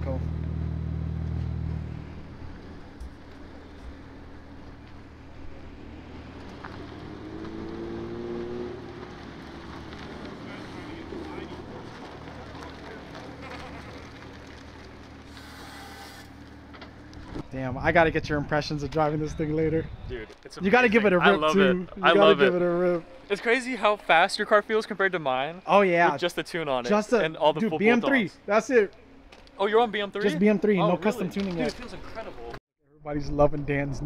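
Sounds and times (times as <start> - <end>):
car engine passing: 0.0 - 17.4.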